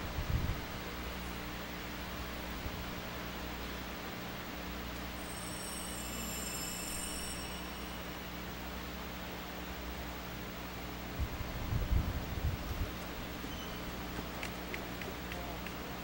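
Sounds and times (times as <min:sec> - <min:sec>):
low electrical hum: 0:00.0 - 0:16.0
steady hiss: 0:00.0 - 0:16.0
faint high ringing tones: 0:04.4 - 0:10.9, 0:13.2 - 0:14.1.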